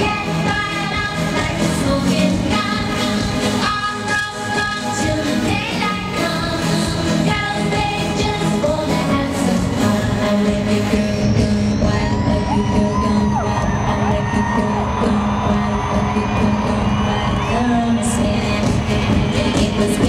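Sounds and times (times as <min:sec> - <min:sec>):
dance-pop music over sound system: 0:00.0 - 0:20.0
woman singing: 0:00.0 - 0:20.0.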